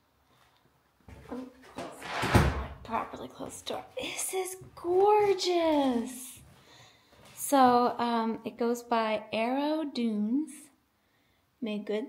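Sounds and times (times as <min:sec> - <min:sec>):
door shutting thump: 0:02.0 - 0:02.8.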